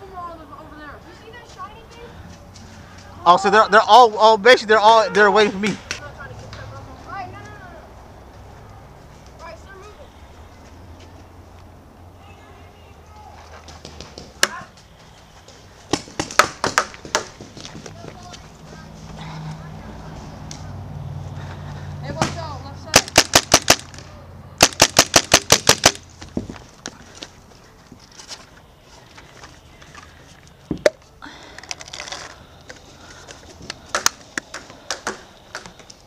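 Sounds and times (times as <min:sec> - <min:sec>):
paintball marker firing: 0:22.2 - 0:24.0, 0:24.6 - 0:26.0.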